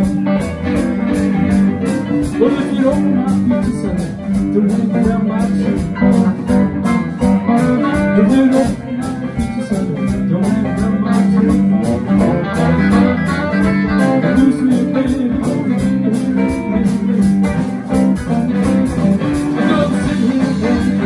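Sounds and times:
blues band playing: 0:00.0 - 0:21.0
electric guitars: 0:00.0 - 0:21.0.

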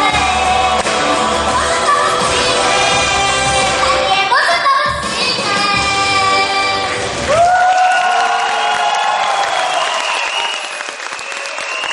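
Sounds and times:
girl singing: 0:00.0 - 0:07.0
backing music: 0:00.0 - 0:07.6
applause: 0:07.3 - 0:11.9.

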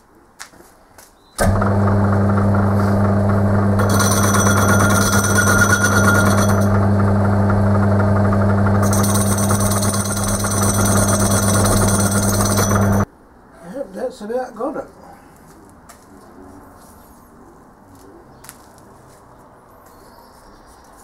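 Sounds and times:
lathe motor hum: 0:01.4 - 0:13.1.

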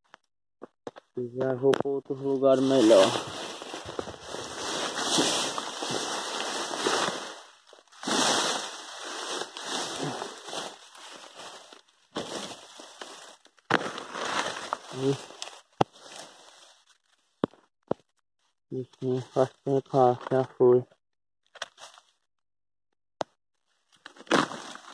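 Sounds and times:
leaves and grass rustling: 0:02.4 - 0:17.1.

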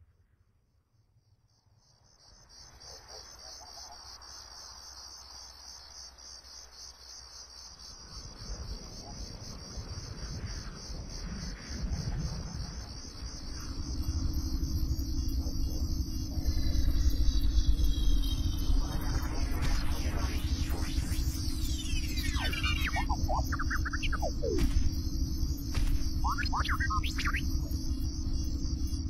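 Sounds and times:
fast pulsing cricket chirps: 0:01.2 - 0:29.0
steady low hum: 0:11.8 - 0:29.0
low rumble: 0:15.2 - 0:28.6
falling whistles: 0:17.7 - 0:27.8.

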